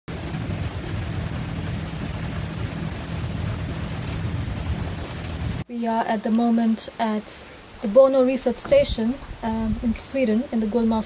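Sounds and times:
boat engine rumble: 0.1 - 11.0
wind and water rushing: 0.1 - 11.0.

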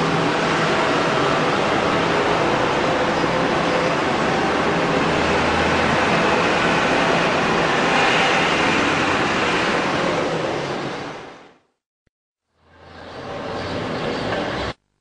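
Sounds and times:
vehicles driving past on road: 0.0 - 11.7, 12.5 - 14.8.

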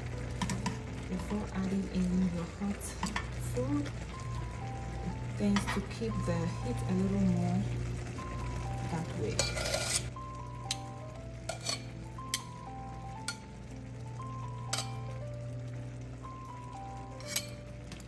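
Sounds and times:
background music: 0.0 - 18.0
metal tongs clinking on pot: 0.4 - 0.8, 2.8 - 3.4, 5.4 - 6.0, 9.0 - 10.1, 10.7 - 12.6, 13.2 - 13.5, 14.6 - 15.2, 17.0 - 18.0.

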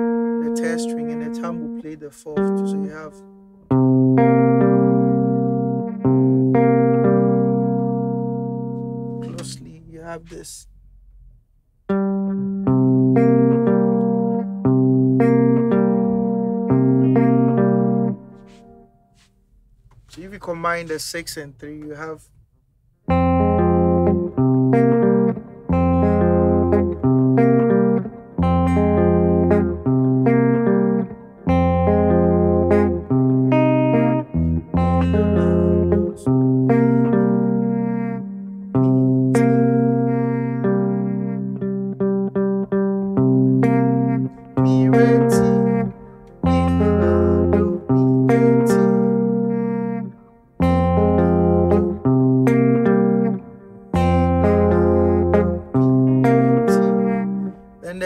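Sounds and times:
fingerpicked clean electric guitar: 0.0 - 19.3, 23.0 - 58.0.

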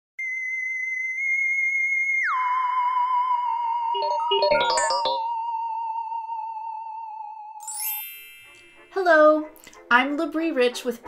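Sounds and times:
high-pitched electronic tone: 2.4 - 7.4.

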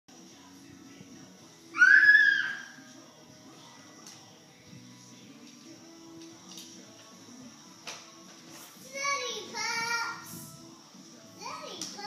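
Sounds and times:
faint background music: 0.1 - 12.0
toddler squealing: 1.8 - 2.8.

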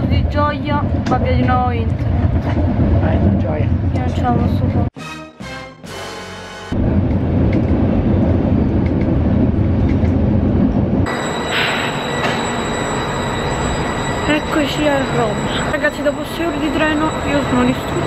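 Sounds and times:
loud dense rumble: 0.0 - 4.9, 6.7 - 12.8
stopped train whining: 11.0 - 18.0.

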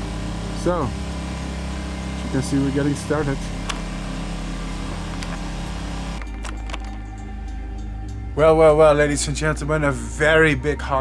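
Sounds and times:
low engine hum: 0.0 - 6.2.

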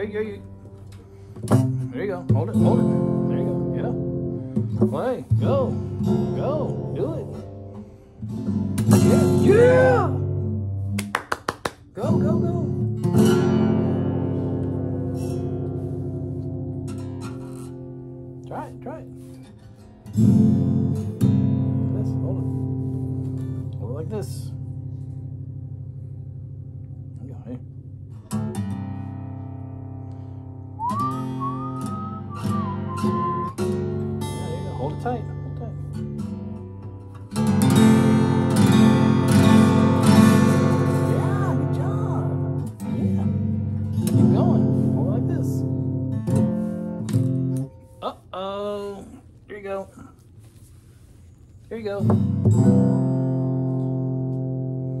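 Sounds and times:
acoustic guitar strumming: 0.0 - 11.0, 11.9 - 48.2, 51.8 - 55.0.

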